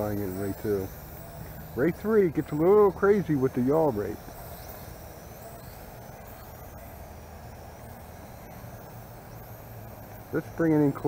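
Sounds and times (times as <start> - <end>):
outdoor background hum: 0.0 - 11.0
toy drone propellers buzzing: 0.0 - 11.0.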